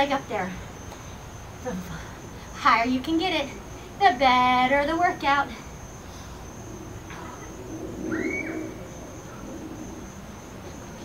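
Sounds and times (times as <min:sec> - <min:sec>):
high-pitched insect drone: 0:05.1 - 0:11.0
bird call: 0:07.1 - 0:08.8.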